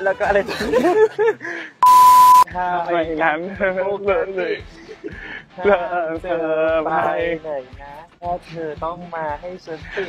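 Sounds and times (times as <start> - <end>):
censor bleep tone: 1.8 - 2.4.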